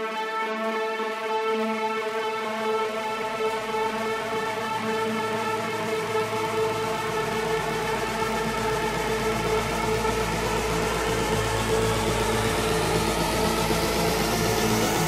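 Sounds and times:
held synth chords: 2.4 - 15.0.

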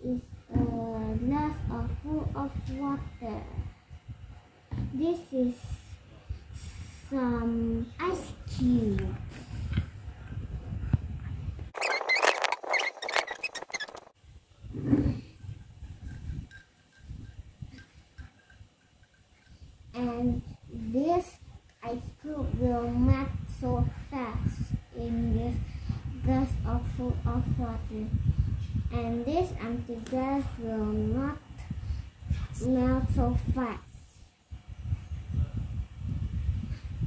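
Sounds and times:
child speaking: 0.0 - 3.7, 4.8 - 6.0, 6.6 - 9.3, 20.0 - 28.2, 28.9 - 31.6, 32.5 - 34.2.

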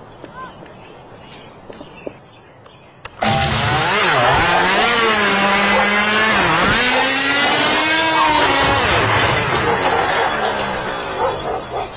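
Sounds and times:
motor engine revving: 3.2 - 11.8.

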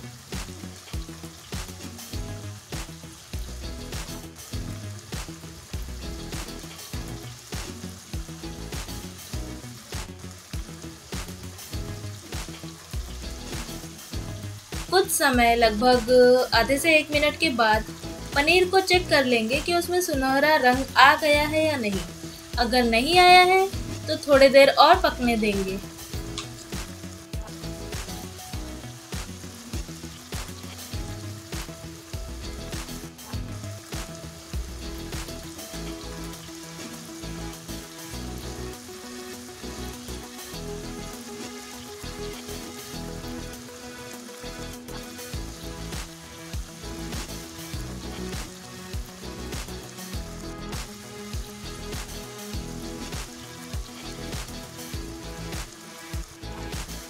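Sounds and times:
cheese sizzling in hot oil: 0.0 - 57.0.

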